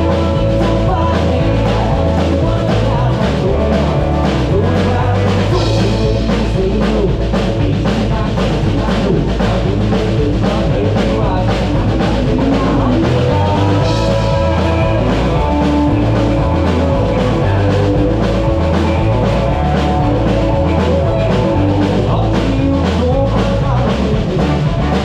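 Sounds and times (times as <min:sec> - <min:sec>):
drum kit beat: 0:00.0 - 0:25.0
electric bass: 0:00.0 - 0:25.0
electric guitar: 0:00.0 - 0:25.0.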